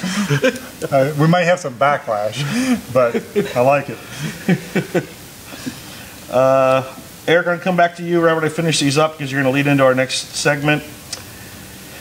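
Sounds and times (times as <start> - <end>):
man chuckling: 0.0 - 1.2, 2.3 - 7.0.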